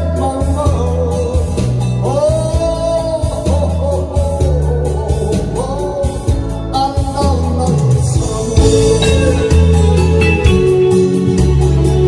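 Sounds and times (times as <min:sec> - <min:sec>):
man singing into microphone: 0:00.0 - 0:11.4
backing music with guitar and bass: 0:00.0 - 0:12.0.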